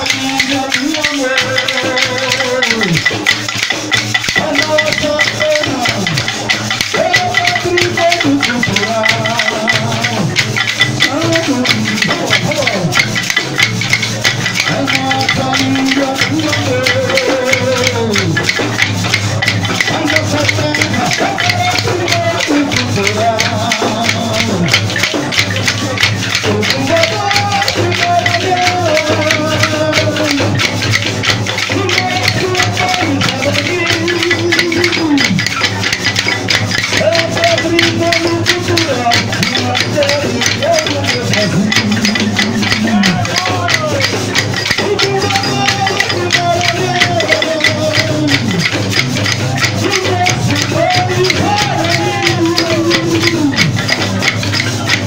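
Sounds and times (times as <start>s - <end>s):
man singing amplified: 0.0s - 55.0s
wooden clappers clattering: 0.0s - 55.0s.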